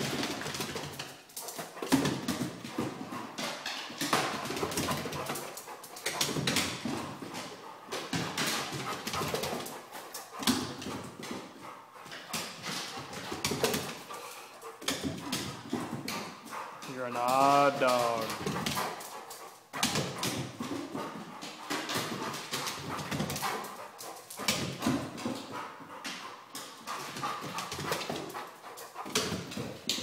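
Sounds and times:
dog paws on wooden stairs: 0.0s - 30.0s.

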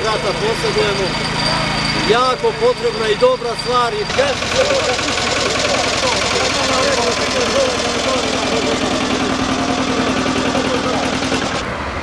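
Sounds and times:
people talking: 0.0s - 11.6s
engine idling with knock: 4.1s - 11.7s.

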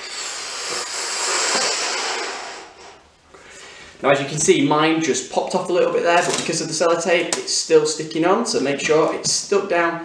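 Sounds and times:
person blowing into balloon: 0.0s - 3.1s.

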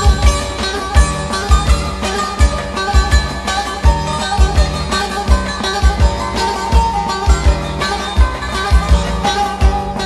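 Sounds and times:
music with drum beat: 0.0s - 10.0s.

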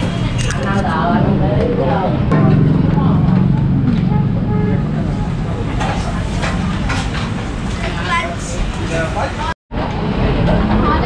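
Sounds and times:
vehicle engine running: 2.3s - 7.7s.

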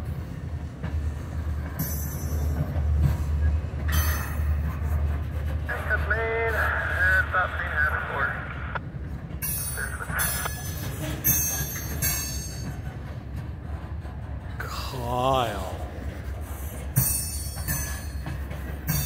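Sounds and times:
freight train wheels rumbling: 0.0s - 19.0s.

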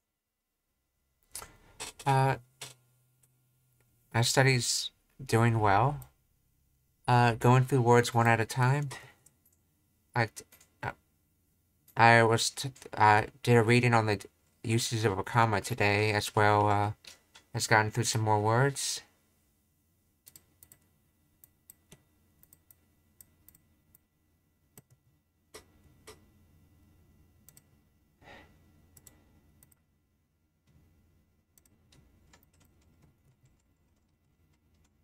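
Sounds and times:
computer keyboard keystrokes: 31.6s - 35.0s.

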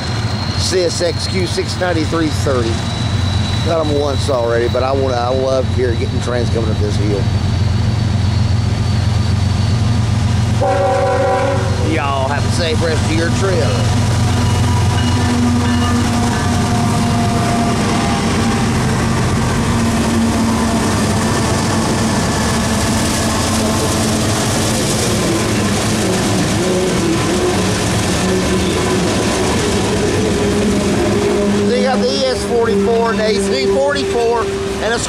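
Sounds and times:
freight cars rumbling and clattering: 0.0s - 10.6s, 11.6s - 35.0s
diesel locomotive engines droning: 0.0s - 35.0s.

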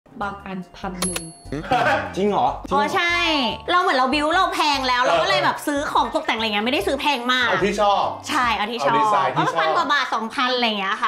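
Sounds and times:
woman speaking: 0.2s - 1.3s, 2.7s - 7.5s, 8.3s - 11.0s.

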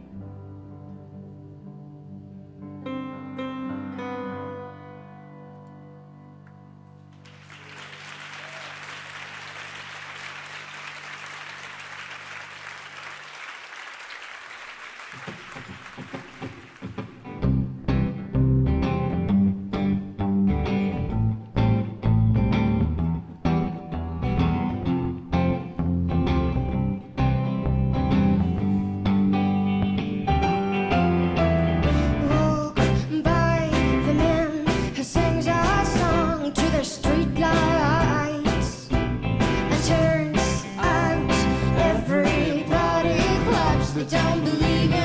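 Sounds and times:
audience applauding: 7.2s - 17.3s
rock band playing: 15.5s - 45.0s.

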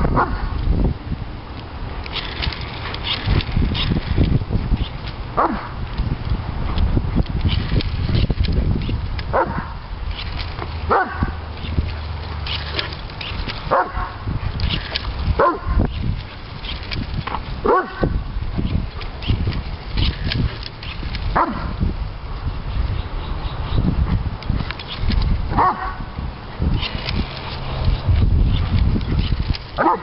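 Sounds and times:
dog yelping barks: 5.4s - 5.7s, 10.9s - 11.4s, 13.7s - 14.2s, 15.4s - 15.7s, 17.6s - 18.0s, 21.4s - 21.7s, 25.6s - 25.9s, 29.8s - 30.0s.

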